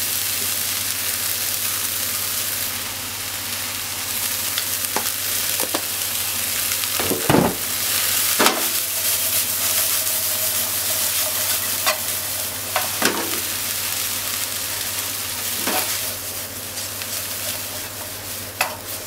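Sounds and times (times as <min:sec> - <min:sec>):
leek sizzling in oil: 0:00.0 - 0:19.0.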